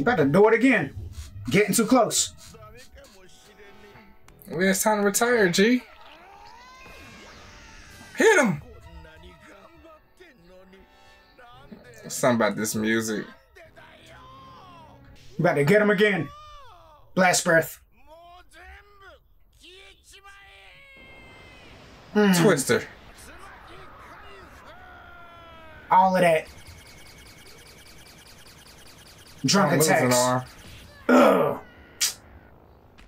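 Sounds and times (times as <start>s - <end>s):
character wailing: 5.8s - 9.0s, 20.6s - 26.7s, 29.4s - 32.5s.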